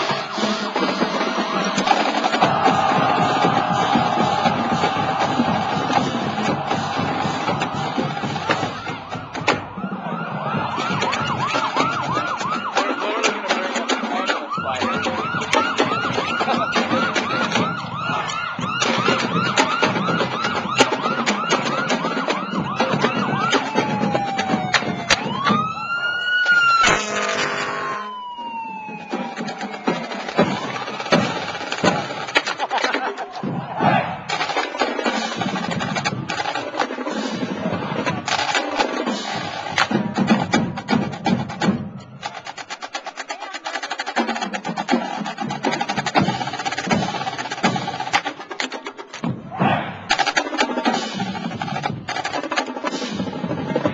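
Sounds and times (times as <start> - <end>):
marching snare drums: 0.0 - 25.8, 26.5 - 53.9
fire truck siren: 0.0 - 32.4
horn blast: 26.8 - 28.2.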